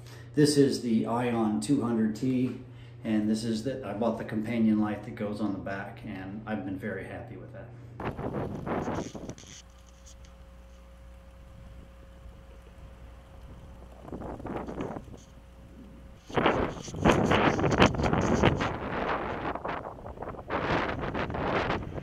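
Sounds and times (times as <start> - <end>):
wind buffeting microphone: 8.0 - 9.6, 11.5 - 22.0.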